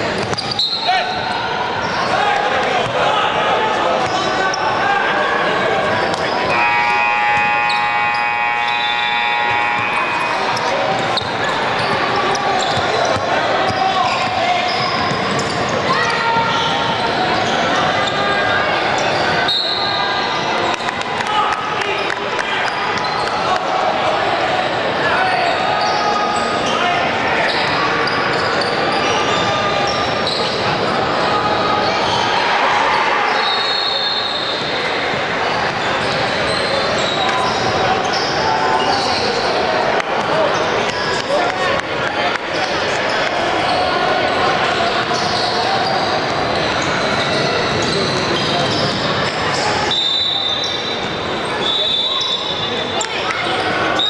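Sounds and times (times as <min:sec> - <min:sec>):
people shouting in hall: 0:00.4 - 0:15.1, 0:30.9 - 0:35.5.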